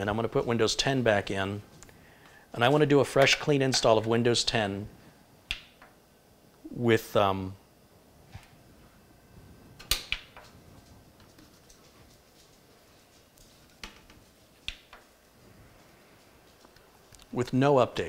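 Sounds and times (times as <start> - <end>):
faint room noise: 0.0 - 18.0.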